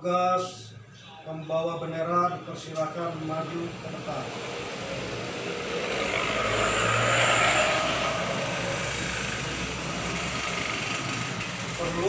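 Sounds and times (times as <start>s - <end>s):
vehicle passing by: 3.1s - 12.0s.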